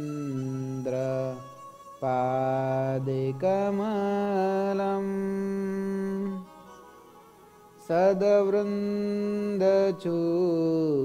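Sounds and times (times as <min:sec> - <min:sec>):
man chanting a devotional verse: 0:00.0 - 0:06.4, 0:07.8 - 0:11.0.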